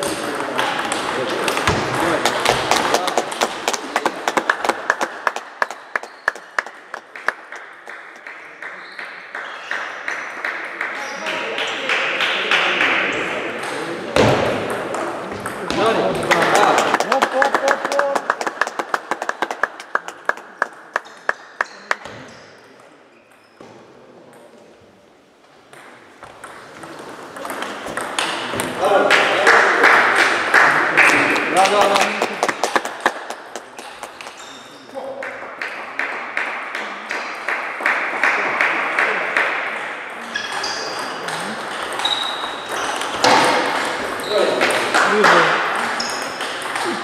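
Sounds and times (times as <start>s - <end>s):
table tennis balls clicking: 25.7s - 28.8s, 40.4s - 47.0s.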